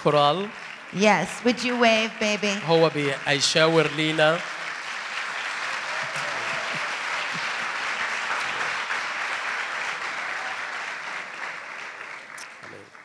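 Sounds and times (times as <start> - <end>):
audience applauding: 0.0 - 13.0.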